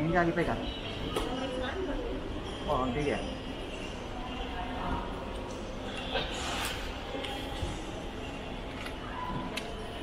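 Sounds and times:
airport terminal hum: 0.0 - 10.0.

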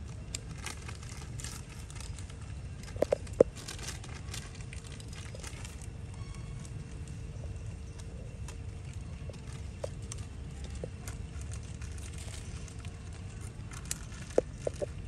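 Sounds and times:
low outdoor rumble: 0.0 - 15.0.

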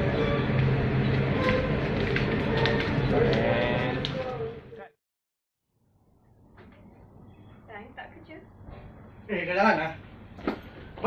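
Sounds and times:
indistinct voices: 2.7 - 4.9.

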